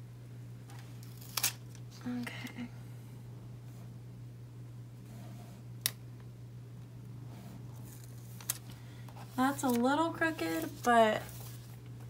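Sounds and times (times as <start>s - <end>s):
steady low hum: 0.0s - 12.0s
faint paper rustle: 7.8s - 11.8s
sticker paper crackling: 9.3s - 11.6s.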